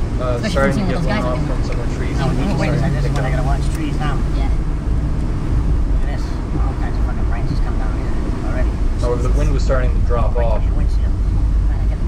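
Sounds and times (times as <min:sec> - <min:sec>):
car cabin rumble: 0:00.0 - 0:12.0
indistinct talk: 0:00.2 - 0:04.8.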